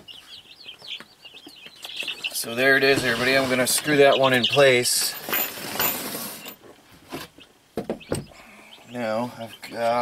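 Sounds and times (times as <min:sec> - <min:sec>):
rustling and scraping on wood floor: 0:02.8 - 0:04.0, 0:04.9 - 0:07.4.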